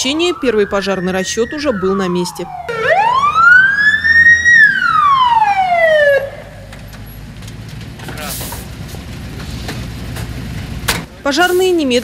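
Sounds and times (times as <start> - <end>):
fire engine siren wailing: 0.0 - 6.8
truck engine running: 2.7 - 12.0.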